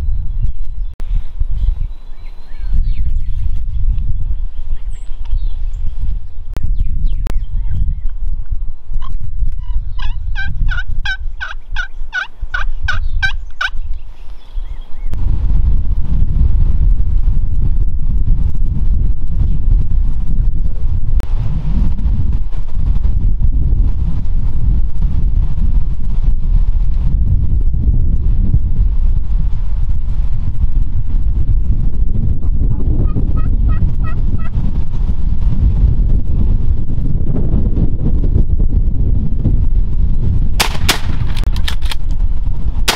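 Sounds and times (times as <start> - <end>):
low rumble on microphone: 0.0 - 42.9
wild turkey yelps: 9.0 - 13.8.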